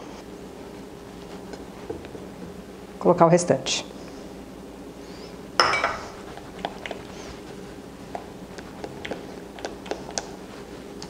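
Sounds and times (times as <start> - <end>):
kitchenware clinking: 5.6 - 6.2.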